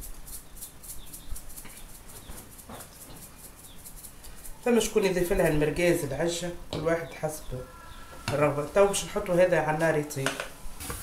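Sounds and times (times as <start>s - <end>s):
salt shaker rattling: 0.0s - 6.0s.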